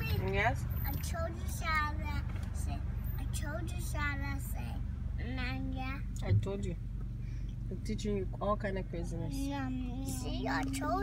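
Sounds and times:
car interior hum: 0.0 - 11.0.

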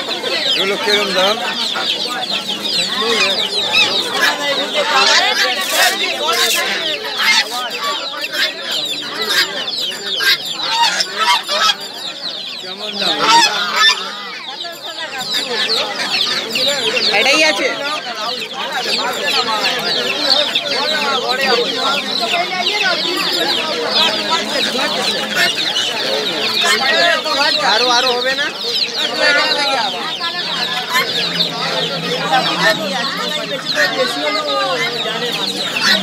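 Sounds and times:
chicks peeping: 0.0 - 36.0
hens clucking: 0.0 - 36.0.

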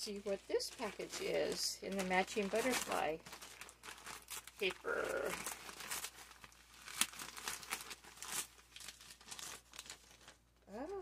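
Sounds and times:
wrapping paper rustling and crinkling: 0.0 - 10.8.

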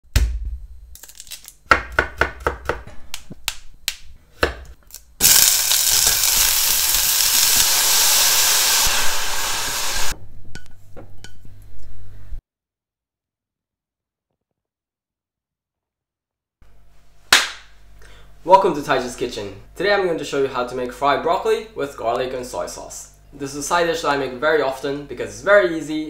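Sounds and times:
knife chopping on wooden board: 1.7 - 3.0
food sizzling in pan: 5.2 - 10.2.

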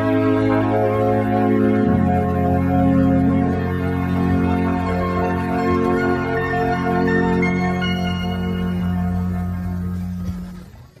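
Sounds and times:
held instrumental chord: 0.0 - 10.8.

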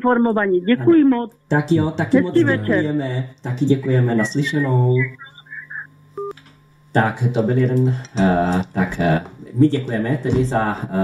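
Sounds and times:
low steady hum: 0.0 - 11.0
telephone line beep: 4.2 - 6.3.

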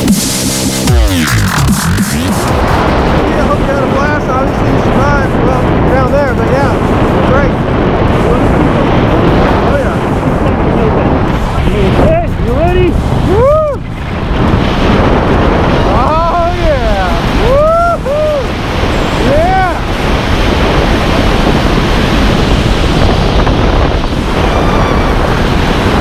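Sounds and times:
wind rushing over microphone: 0.0 - 26.0
person whooping: 13.3 - 13.8, 17.4 - 18.5.

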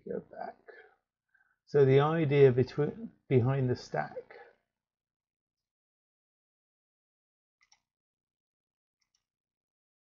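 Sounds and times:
man speaking: 0.0 - 0.9, 1.7 - 4.6.

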